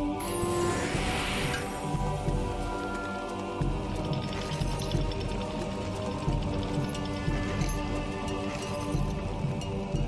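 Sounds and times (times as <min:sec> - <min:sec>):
game music with low beat: 0:00.0 - 0:10.0.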